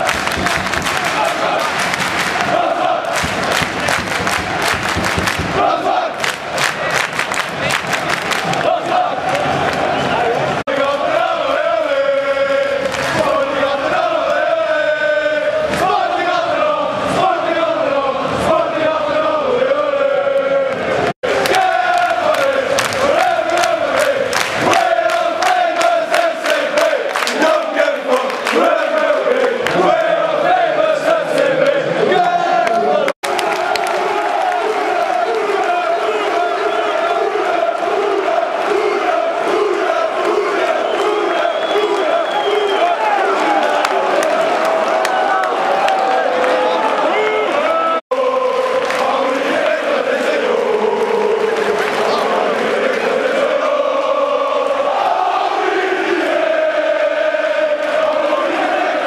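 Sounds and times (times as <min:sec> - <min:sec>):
fast rhythmic clapping: 0:00.0 - 0:09.9, 0:21.3 - 0:30.0, 0:48.1 - 0:54.8
football crowd chanting and singing: 0:00.0 - 0:59.0.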